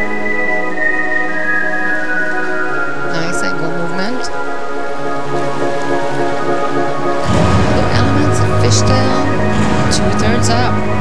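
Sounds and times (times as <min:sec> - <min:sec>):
sustained musical chord: 0:00.0 - 0:11.0.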